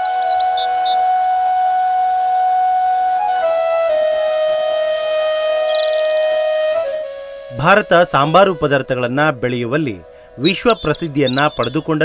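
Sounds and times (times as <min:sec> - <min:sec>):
flute holding long note: 0:00.0 - 0:09.4.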